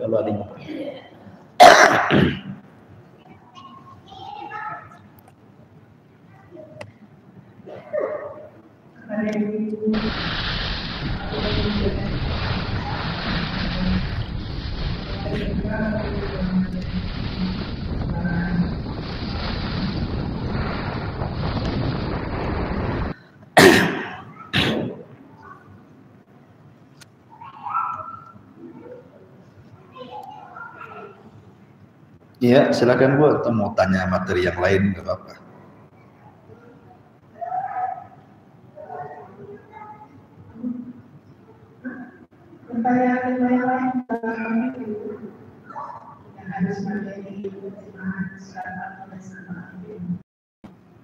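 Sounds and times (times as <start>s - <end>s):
steady background hiss: 0.0s - 51.0s
man clearing throat: 1.6s - 2.6s, 23.6s - 25.0s
person coughing: 1.6s - 2.6s, 23.6s - 25.0s.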